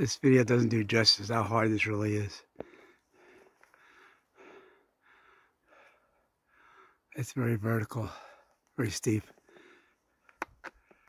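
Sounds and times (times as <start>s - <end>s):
heavy breathing: 2.6s - 7.1s, 9.4s - 10.2s.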